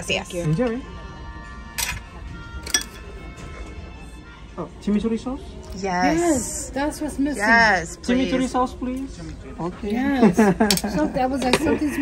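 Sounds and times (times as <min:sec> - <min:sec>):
background music: 0:00.0 - 0:12.0
cutlery clinking on plate: 0:02.6 - 0:03.0.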